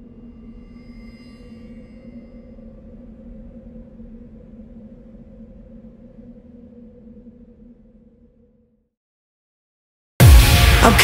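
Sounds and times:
faint high ringing tones: 0:00.0 - 0:08.4.

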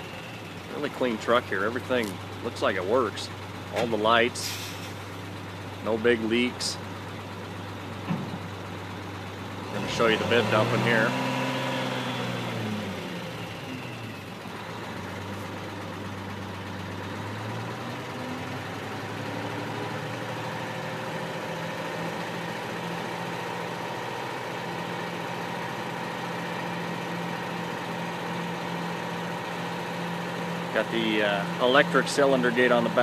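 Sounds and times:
diesel truck engine running: 0:00.0 - 0:33.0.

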